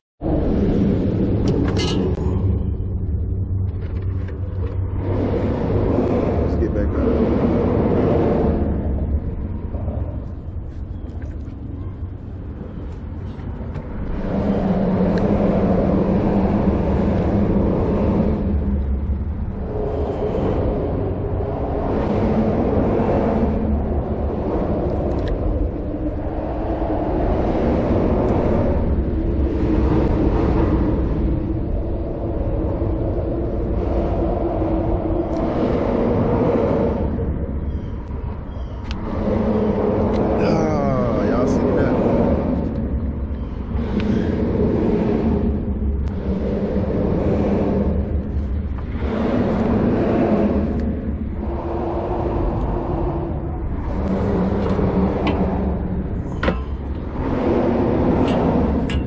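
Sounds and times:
steady low rumble: 0:00.2 - 0:59.0.

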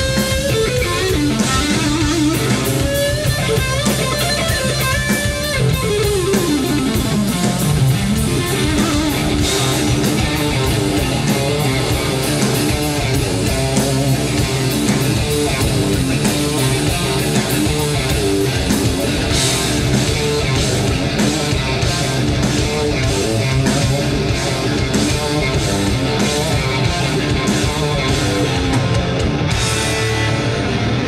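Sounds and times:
bass guitar: 0:00.0 - 0:31.0
drum kit beat: 0:00.0 - 0:31.0
electric guitar lead: 0:00.0 - 0:31.0.

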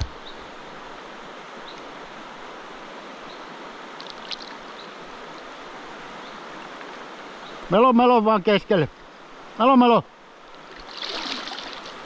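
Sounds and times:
water splash: 0:04.0 - 0:04.6, 0:10.6 - 0:12.0
river rapids rushing: 0:10.6 - 0:12.0.

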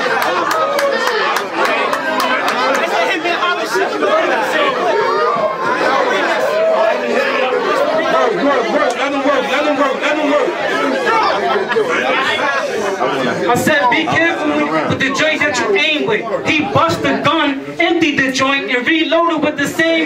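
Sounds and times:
crowd shouting and talking: 0:00.0 - 0:20.0.

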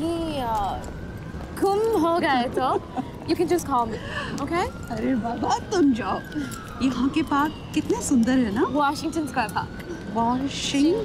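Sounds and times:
city street ambience: 0:00.0 - 0:11.0
distant siren wailing: 0:00.0 - 0:11.0.

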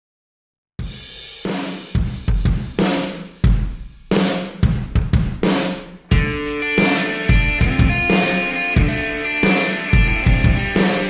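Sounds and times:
rock drum kit playing: 0:00.8 - 0:11.0
kick drum thumps: 0:04.6 - 0:05.4.

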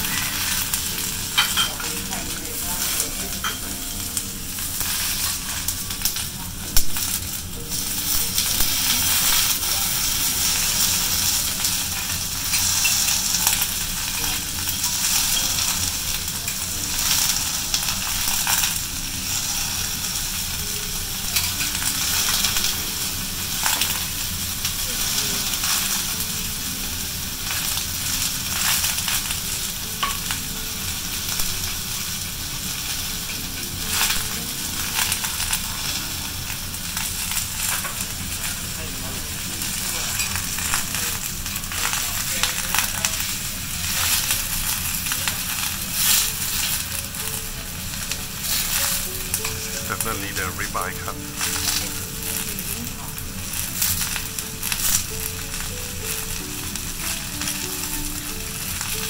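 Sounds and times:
knife and spatula scraping grill: 0:00.0 - 0:01.9
food sizzling on a grill: 0:00.0 - 0:59.0.

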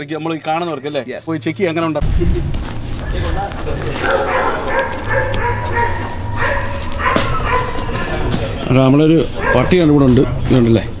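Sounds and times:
steady low rumble: 0:02.0 - 0:09.1
dogs yipping and whining: 0:03.7 - 0:08.3, 0:09.3 - 0:10.4.

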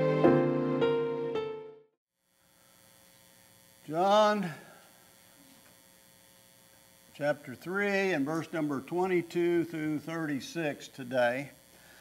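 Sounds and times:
electrical mains hum: 0:02.2 - 0:12.0.

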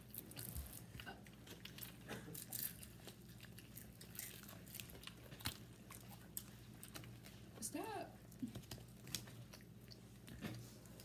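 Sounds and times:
people chewing crispy chicken: 0:00.0 - 0:07.6, 0:08.2 - 0:11.0.

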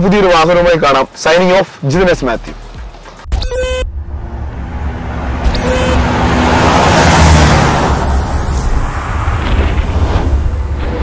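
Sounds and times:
car driving past: 0:03.9 - 0:11.0.

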